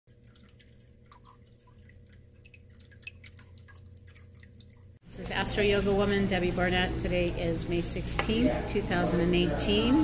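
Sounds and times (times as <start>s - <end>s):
low steady hum: 0.1s - 10.0s.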